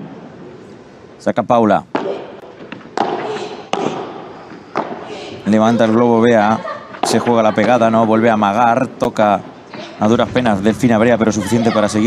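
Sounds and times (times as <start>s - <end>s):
rackets striking ball: 1.9s - 5.7s, 6.9s - 8.2s.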